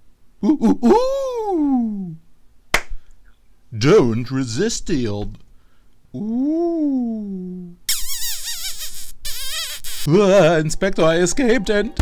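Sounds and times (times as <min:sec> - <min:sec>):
cartoon voice sliding ooh: 0:06.2 - 0:10.1
comic kissing squeal: 0:07.9 - 0:10.1.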